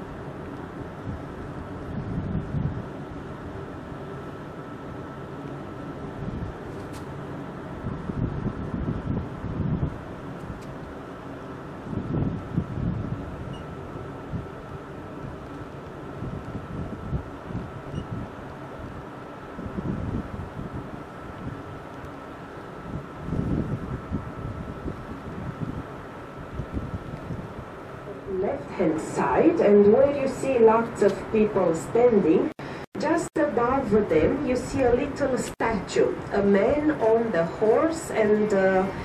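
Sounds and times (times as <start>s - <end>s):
wind gusting on microphone: 0.0s - 4.8s, 5.8s - 39.0s
faint steady whine: 0.0s - 39.0s
ship engine hum: 0.0s - 39.0s.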